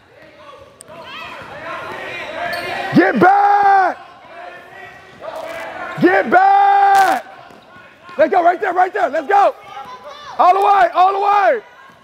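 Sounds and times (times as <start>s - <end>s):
faint shouting voices: 0.1s - 12.0s.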